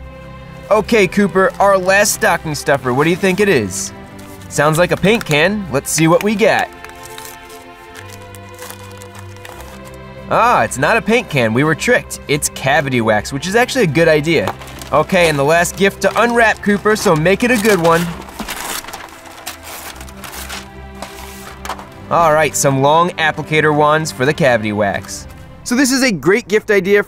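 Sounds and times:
background music with held notes: 0:00.0 - 0:27.0
wrapping paper tearing: 0:00.6 - 0:10.5, 0:13.6 - 0:22.5.

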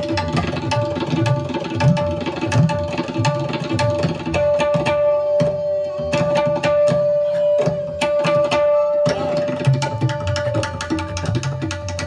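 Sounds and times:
tablas playing: 0:00.0 - 0:12.0.

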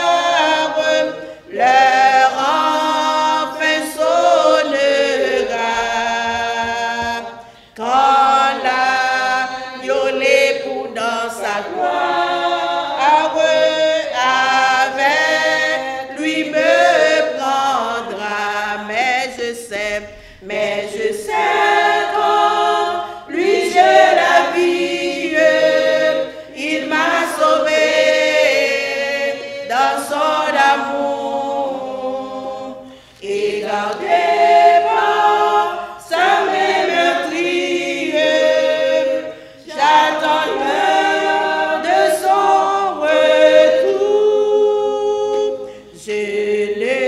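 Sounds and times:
woman singing a hymn: 0:00.0 - 0:47.0.

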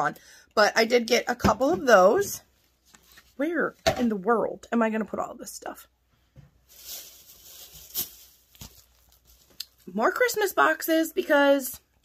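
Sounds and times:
plastic bags crinkling: 0:06.6 - 0:10.4.

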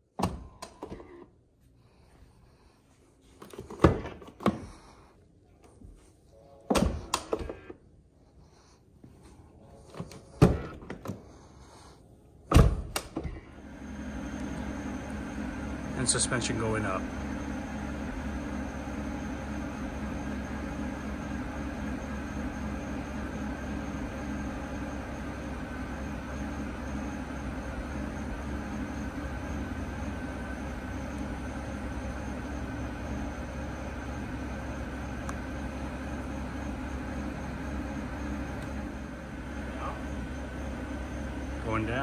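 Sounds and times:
car engine idling: 0:12.8 - 0:42.0.

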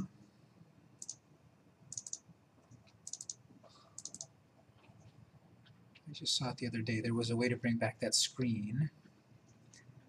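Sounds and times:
computer mouse clicking: 0:01.0 - 0:01.2, 0:01.9 - 0:06.1.

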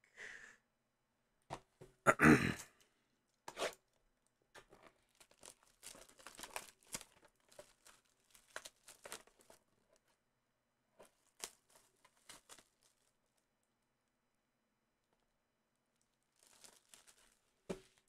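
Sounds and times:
packaging crinkling and tearing: 0:04.6 - 0:09.6, 0:11.0 - 0:13.1, 0:16.3 - 0:18.0.

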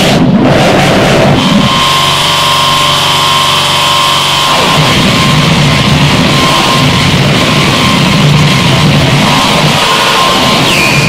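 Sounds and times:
droning tones with high whine: 0:00.0 - 0:11.0
harsh distorted noise music: 0:00.0 - 0:11.0.

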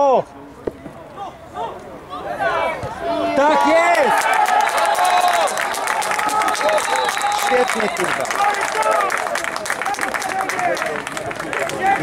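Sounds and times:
men shouting and cheering: 0:02.3 - 0:12.0
hands clapping: 0:04.1 - 0:12.0.

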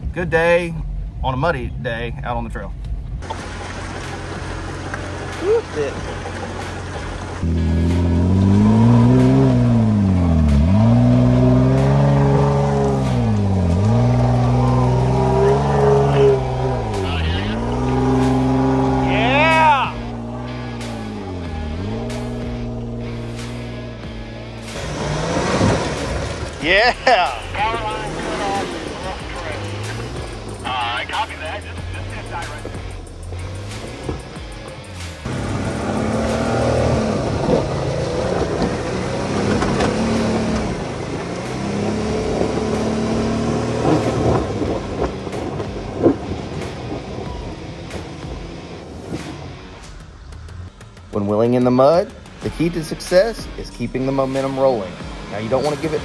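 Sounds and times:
off-road engines revving: 0:03.1 - 0:56.0.

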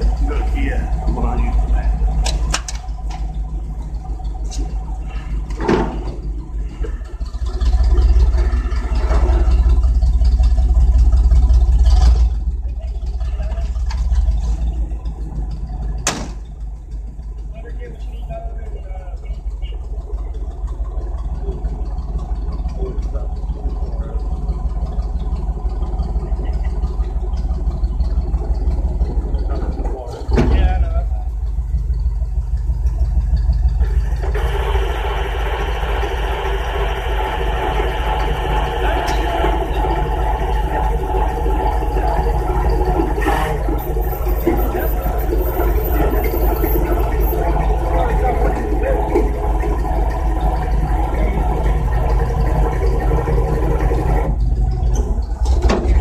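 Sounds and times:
truck engine idling: 0:00.0 - 0:56.0.

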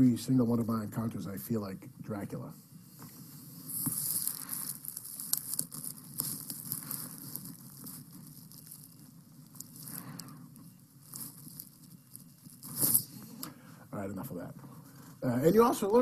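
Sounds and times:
sleeve rubbing headset microphone: 0:02.9 - 0:13.4.

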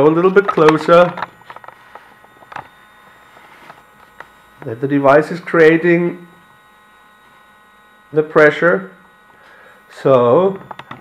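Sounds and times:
device humming: 0:00.0 - 0:11.0.

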